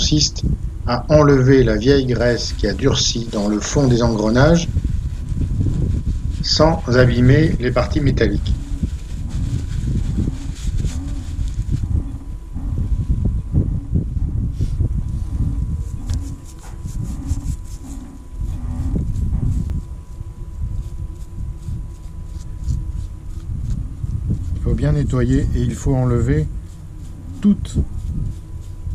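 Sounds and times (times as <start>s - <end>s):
continuous low rumble: 0.0s - 28.9s.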